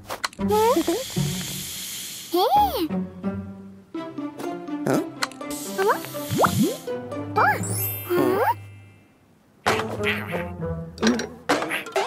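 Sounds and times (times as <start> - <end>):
cartoon soundtrack music: 0.4 - 1.1, 2.4 - 9.0, 9.6 - 12.0
hiss: 0.8 - 2.6, 5.5 - 6.8.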